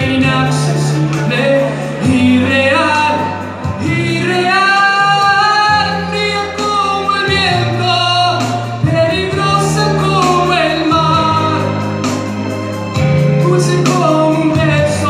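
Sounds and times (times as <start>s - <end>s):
man singing a ballad: 0.0s - 15.0s
musical accompaniment with bass: 0.0s - 15.0s.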